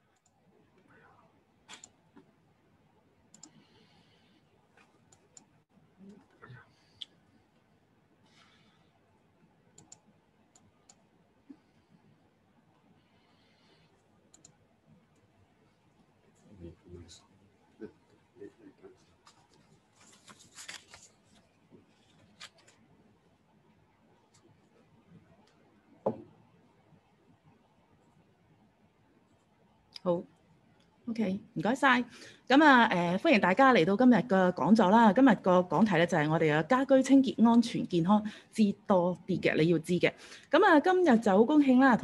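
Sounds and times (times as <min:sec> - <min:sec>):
faint sharp clicks: 0:03.3 - 0:03.6, 0:09.8 - 0:11.0, 0:14.3 - 0:15.3.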